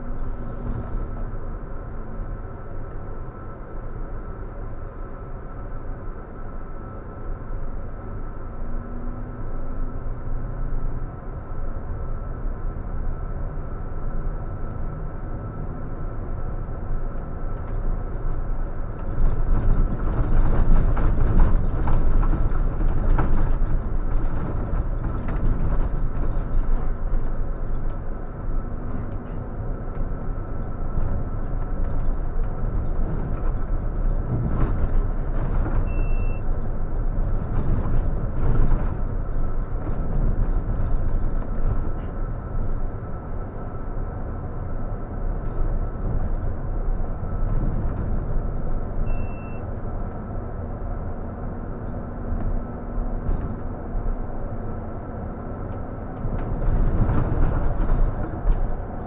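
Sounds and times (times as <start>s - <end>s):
coach engine and road rumble: 0.0s - 59.0s
short electronic beep: 35.9s - 36.4s, 49.1s - 49.7s.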